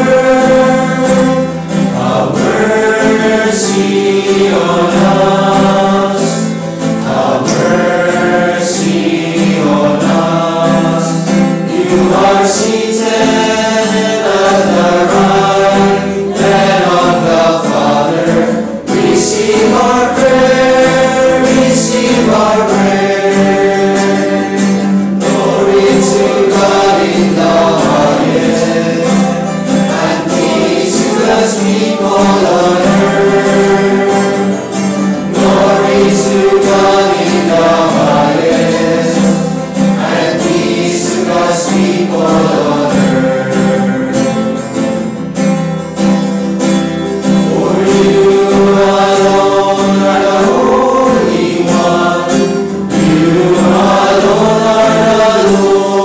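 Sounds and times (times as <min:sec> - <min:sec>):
choir singing church music: 0:00.0 - 0:56.0
instrumental accompaniment: 0:00.0 - 0:56.0.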